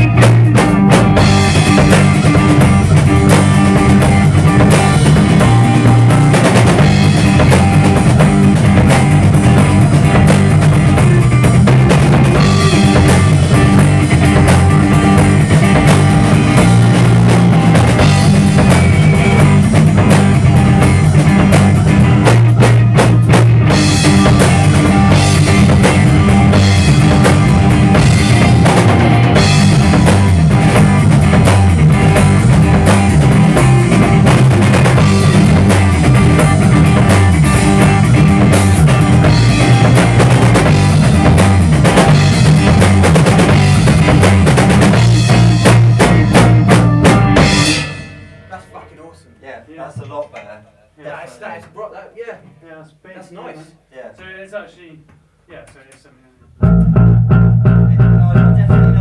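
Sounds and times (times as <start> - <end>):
electric guitar: 0.0 - 48.6, 56.5 - 59.0
bass guitar: 0.0 - 49.4, 56.4 - 59.0
drum kit: 0.0 - 50.6, 56.5 - 59.0.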